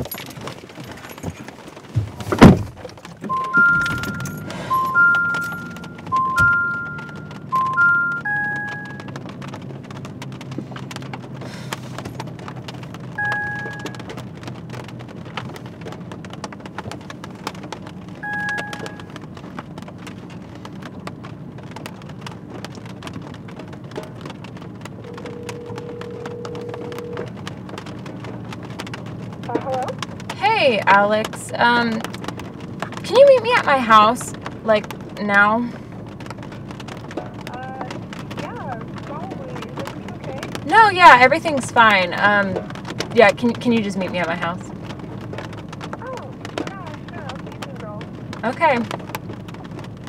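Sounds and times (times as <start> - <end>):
rain on car roof: 0.0 - 50.0
electronic two-note chime: 3.3 - 9.0
two-tone beep: 3.3 - 9.1, 13.2 - 14.0, 18.2 - 19.1, 25.2 - 27.2.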